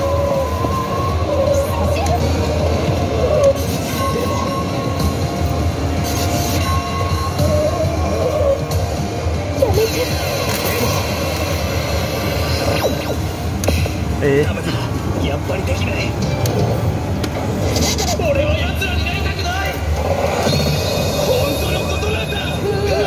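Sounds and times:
background music: 0.0s - 23.0s
low rumble of arcade noise: 0.0s - 23.0s.

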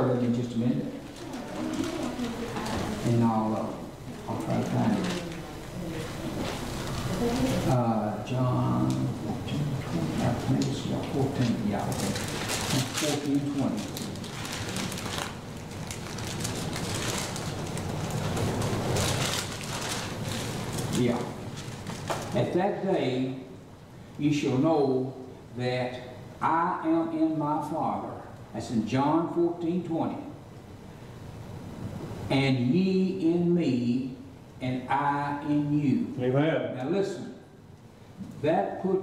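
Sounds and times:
pages being turned: 11.4s - 22.4s.

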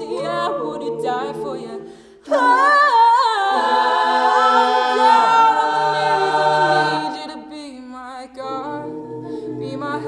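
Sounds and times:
vocal group holding a chord: 0.0s - 7.6s, 8.4s - 10.0s.

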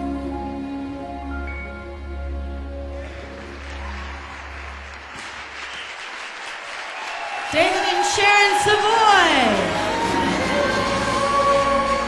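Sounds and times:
music: 0.0s - 12.0s
audience applauding: 2.9s - 12.0s.

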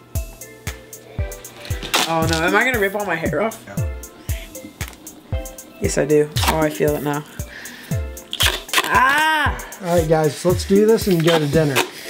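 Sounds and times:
background music: 0.0s - 12.0s
person's wordless ooh: 8.8s - 9.8s.

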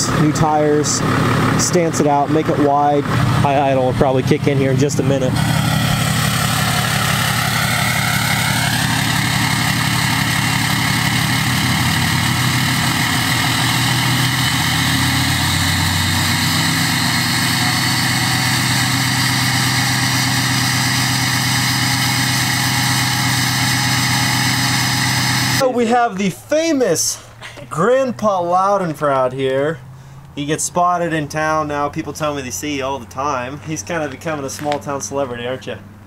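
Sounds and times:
high whine: 0.0s - 26.9s
diesel engine idling: 0.0s - 27.8s.

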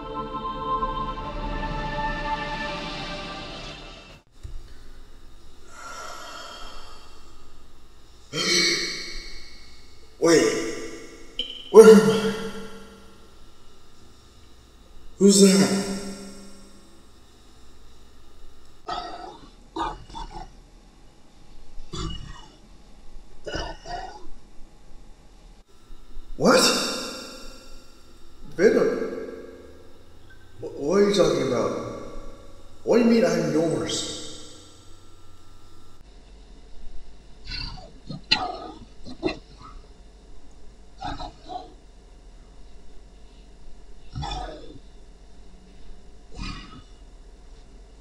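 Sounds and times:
person groaning: 5.7s - 7.3s, 8.3s - 9.3s, 46.4s - 46.9s
person making vocal sounds: 8.3s - 9.2s.

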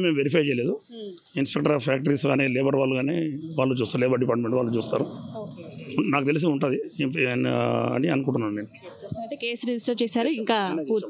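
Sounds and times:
man speaking: 0.0s - 8.9s.

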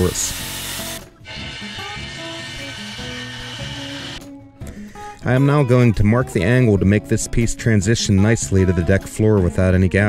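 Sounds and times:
circular saw cutting wood: 0.0s - 4.2s
background music with simple melody: 0.0s - 10.0s.

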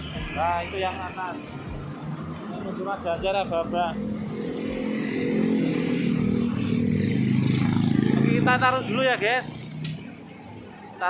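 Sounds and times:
motorcycle engine running: 1.6s - 10.0s.

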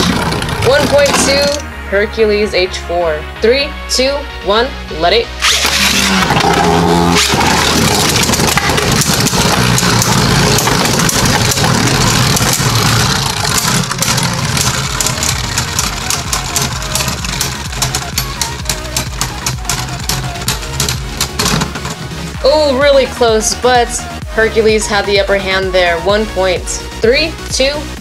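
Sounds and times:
spinning tops clacking: 5.4s - 22.4s
spinning tops whirring: 5.4s - 22.6s.

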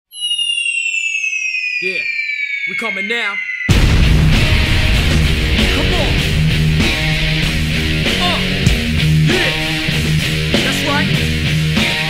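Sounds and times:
high tone gliding downward: 0.1s - 10.4s
man shouting: 9.2s - 9.6s.

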